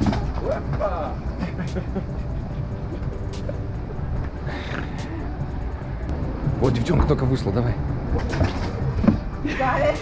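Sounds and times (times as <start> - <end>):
background music: 0.0 - 10.0
passing traffic rumble: 0.0 - 10.0.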